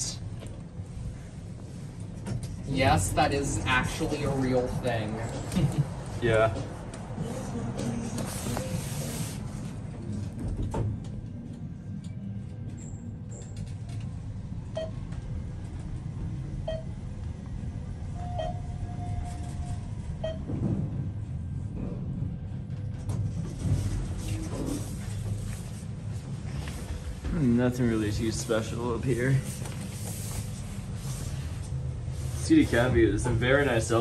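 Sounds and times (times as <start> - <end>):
elevator travel rumble: 0.0 - 34.0.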